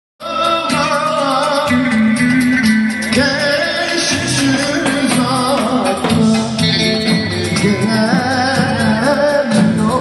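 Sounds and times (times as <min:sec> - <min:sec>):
folk dance music: 0:02.0 - 0:10.0.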